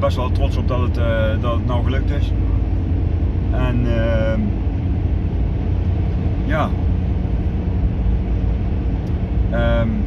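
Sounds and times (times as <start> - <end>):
car interior low rumble: 0.0 - 10.0.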